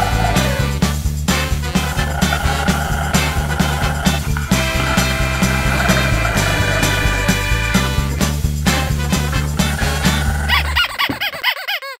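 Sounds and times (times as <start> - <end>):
upbeat swing music: 0.0 - 11.4.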